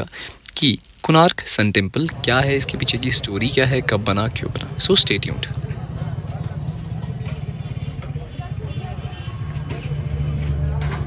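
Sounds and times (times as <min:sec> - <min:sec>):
faint voices: 0:02.1 - 0:11.0
engine idling: 0:02.2 - 0:10.9.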